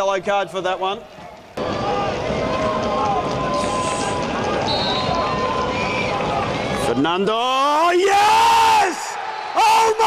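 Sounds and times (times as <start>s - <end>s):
crowd noise: 0.0s - 10.0s
man commentator yelling excitedly: 6.8s - 10.0s.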